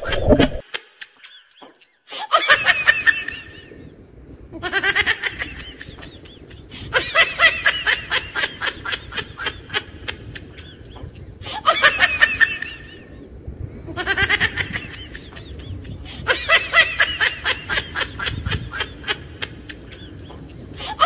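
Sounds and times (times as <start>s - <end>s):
gull laughing calls: 14.0s - 21.0s.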